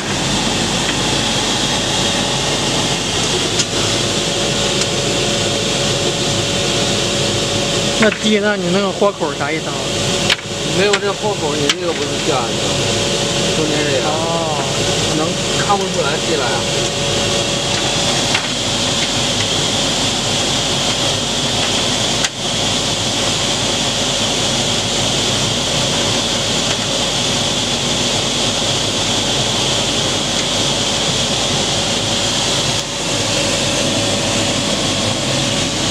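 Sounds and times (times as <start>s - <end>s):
high steady whine: 0.0s - 35.9s
whirring hiss of machinery: 0.0s - 35.9s.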